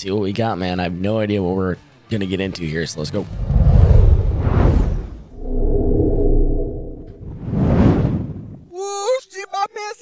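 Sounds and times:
whoosh sound effect: 3.4s - 8.3s
electronic tone gliding upward: 5.3s - 7.3s.

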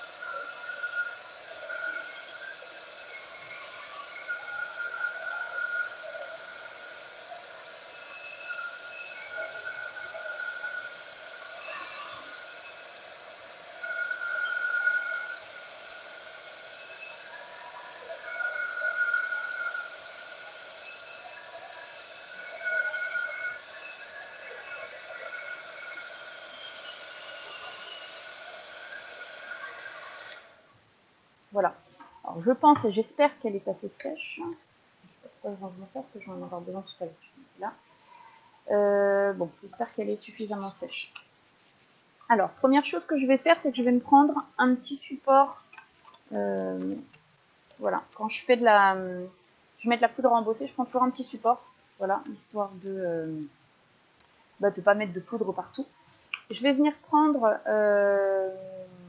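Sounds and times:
heat tool fan whirring: 0.0s - 30.7s.

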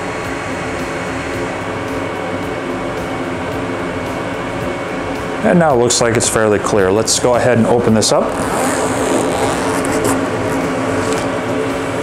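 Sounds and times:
exhaust fan humming: 0.0s - 12.0s.

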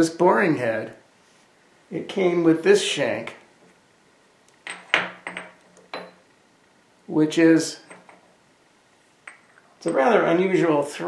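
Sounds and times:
metal parts clinking on metal table: 4.7s - 6.2s, 7.9s - 8.3s.

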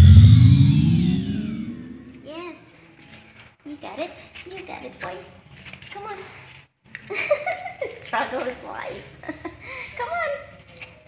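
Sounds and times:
electronic sweep sound effect: 0.0s - 2.3s
short rising-and-falling voice: 0.0s - 2.3s.

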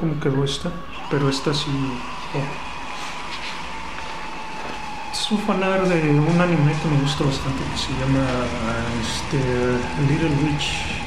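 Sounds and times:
steady background noise: 0.0s - 11.0s.

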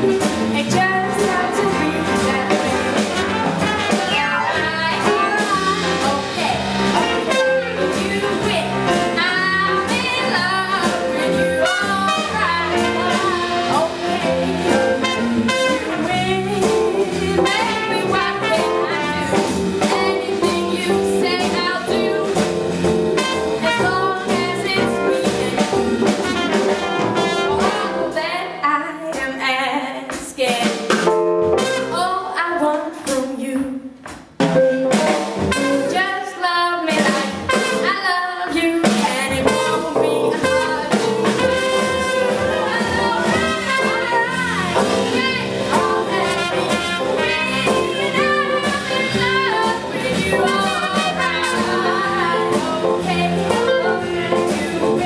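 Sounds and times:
jazz band playing: 0.0s - 55.0s
trumpet solo: 1.8s - 6.2s, 6.8s - 9.6s, 10.4s - 16.3s, 17.4s - 19.4s, 23.1s - 24.2s, 25.7s - 28.1s, 31.5s - 32.0s, 35.4s - 36.2s, 37.4s - 38.2s, 40.4s - 54.4s.

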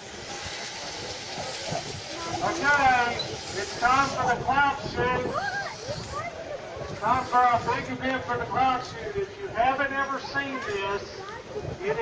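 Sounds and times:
steady outdoor hiss: 0.0s - 12.0s
wind rumble on microphone: 0.0s - 12.0s.

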